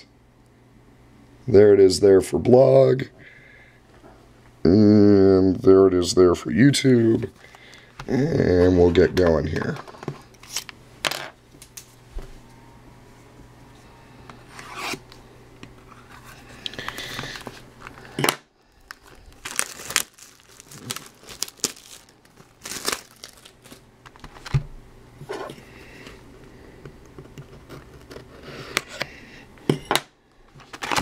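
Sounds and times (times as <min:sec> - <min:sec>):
plastic wrap ripping and crinkling: 0:18.8 - 0:24.5.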